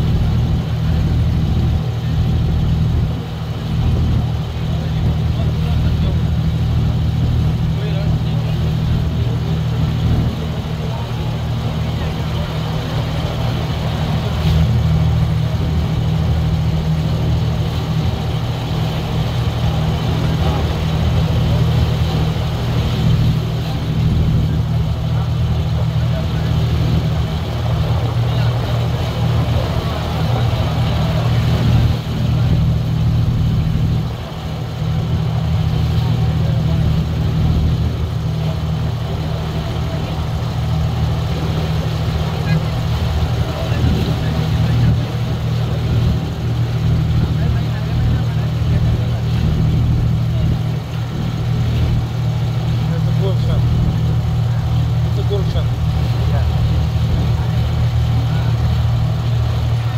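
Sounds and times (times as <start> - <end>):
boat engine droning: 0.0 - 59.9.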